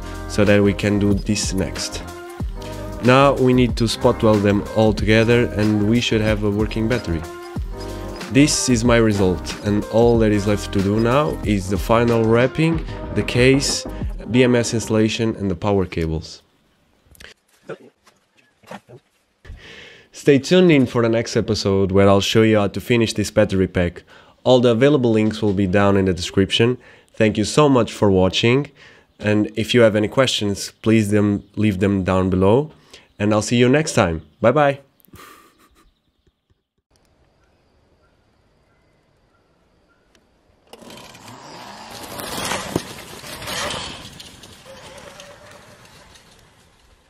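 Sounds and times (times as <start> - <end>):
person talking: 0.2 - 2.1, 3.0 - 7.4, 8.2 - 16.4, 20.1 - 34.8
person breathing in: 19.5 - 20.1, 24.1 - 24.4, 26.8 - 27.1, 28.8 - 29.1
tyres crunching over dry leaves: 40.8 - 47.0.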